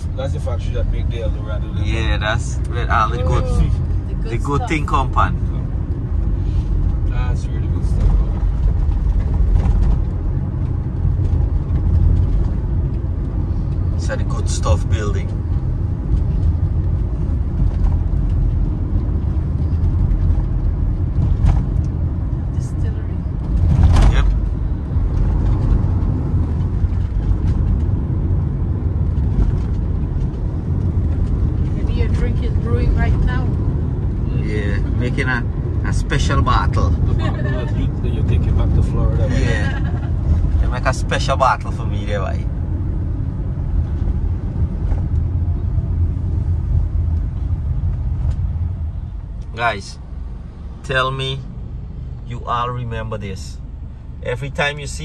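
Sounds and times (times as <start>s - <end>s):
indistinct voices talking: 0.0s - 5.6s
car road and engine rumble: 0.0s - 55.0s.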